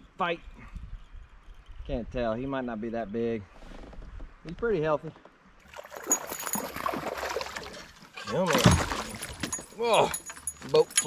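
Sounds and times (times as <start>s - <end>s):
fish splashing in water: 5.7s - 9.2s.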